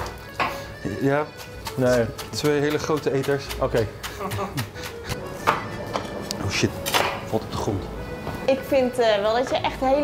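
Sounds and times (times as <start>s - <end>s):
background music: 0.0s - 10.0s
knife chopping on cutting board: 1.3s - 6.2s.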